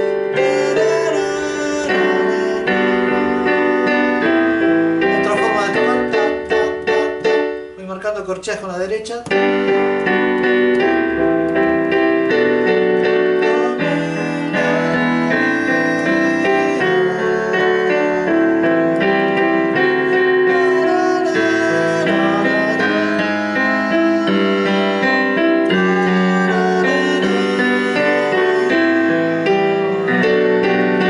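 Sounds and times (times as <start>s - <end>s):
digital piano playing: 0.0s - 31.0s.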